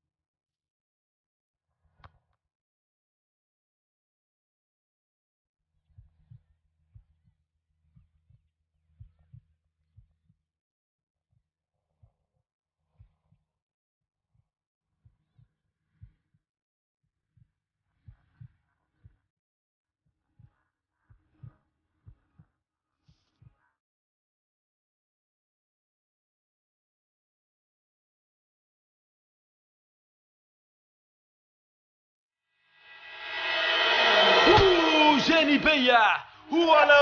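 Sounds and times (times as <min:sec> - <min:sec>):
faint heartbeat thumps: 0:05.8 - 0:10.4, 0:14.3 - 0:16.5, 0:17.3 - 0:19.3, 0:20.1 - 0:23.7
background sound: 0:32.8 - 0:37.0
man calling out loudly: 0:34.8 - 0:37.0.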